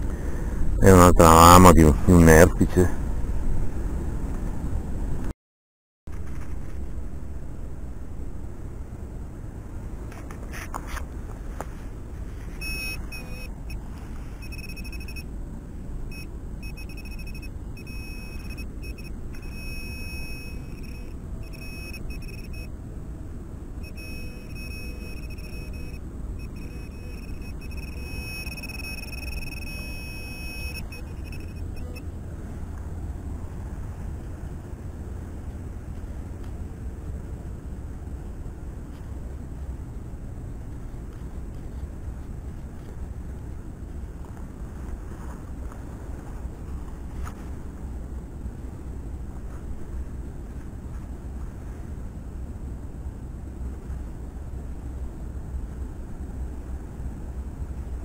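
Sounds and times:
steady low rumble: 0.0 - 5.3, 6.1 - 58.0
metal detector pinpointer beeping: 12.6 - 13.8, 14.4 - 15.3, 16.1 - 22.7, 23.8 - 32.1.

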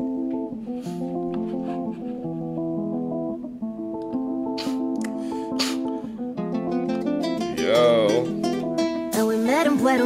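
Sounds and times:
guitar picking a latin melody: 0.0 - 10.0.

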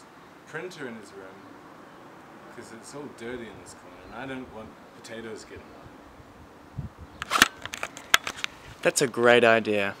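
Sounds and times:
clicks and knocks on microphone: 7.2 - 8.6.

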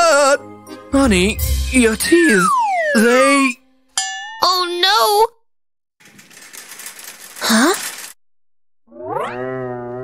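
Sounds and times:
buzzy rattling clatter: 6.0 - 8.2.

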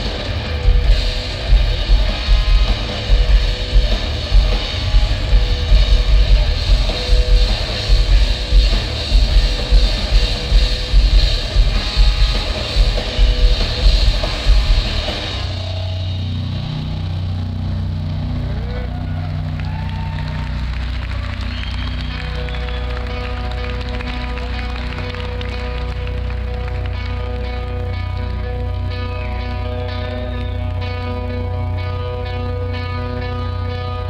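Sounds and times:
bass droning: 0.0 - 34.0
heavy distorted guitars: 0.0 - 34.0.

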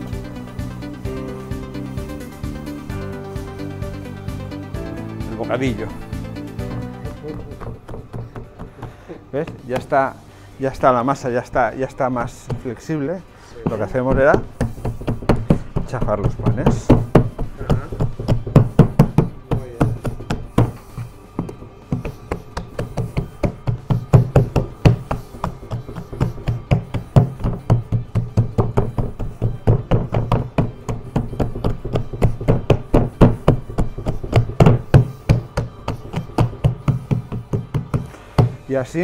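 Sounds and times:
hands patting bread dough: 7.1 - 10.2, 10.8 - 13.0, 13.6 - 38.9.

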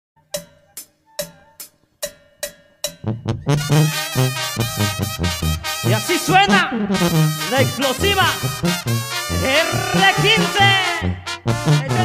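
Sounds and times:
brass band playing: 3.5 - 12.0.

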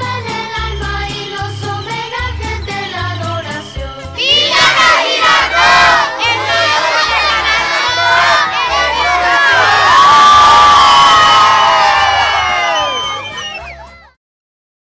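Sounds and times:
crowd shouting and cheering: 4.0 - 14.2.

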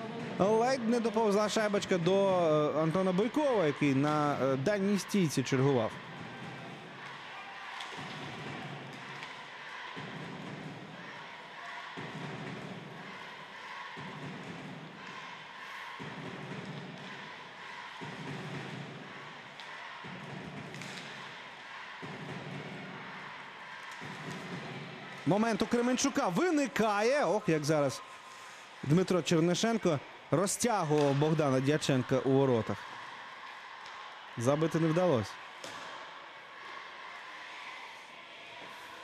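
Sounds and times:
arena crowd noise: 0.0 - 39.0
drum beating slowly: 7.9 - 25.4.

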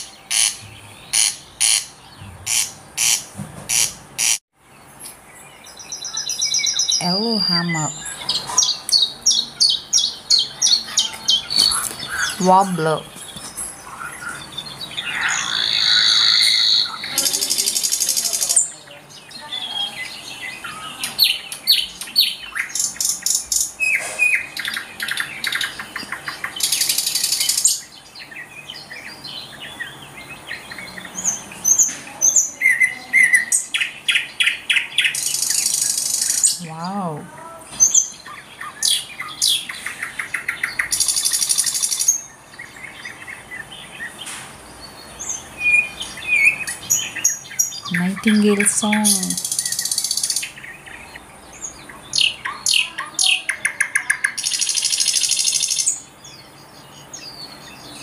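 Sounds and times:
nightingale singing: 0.0 - 58.0.

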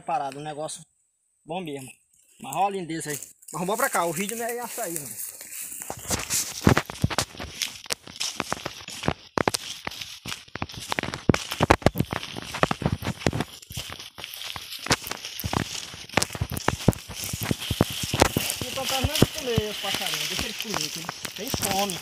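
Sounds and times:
footsteps through dry leaves: 2.4 - 22.0
twigs snapping underfoot: 2.5 - 22.0.

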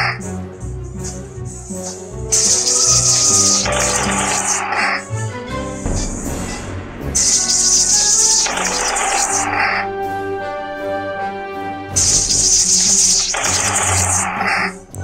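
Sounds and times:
game music: 0.0 - 15.0.

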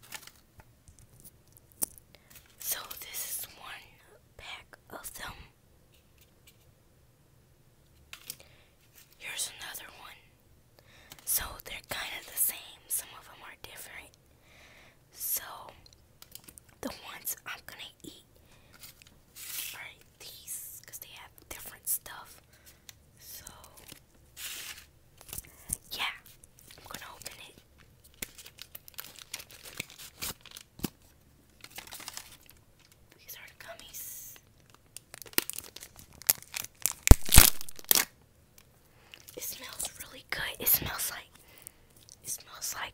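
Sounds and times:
plastic wrapper crinkling: 0.0 - 2.6, 23.6 - 33.1, 33.8 - 40.2.

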